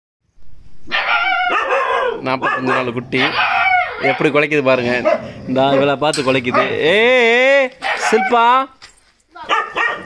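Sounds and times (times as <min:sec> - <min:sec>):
puppy yelping barks: 0:00.8 - 0:04.4, 0:05.0 - 0:06.9, 0:07.8 - 0:08.6, 0:09.4 - 0:10.0.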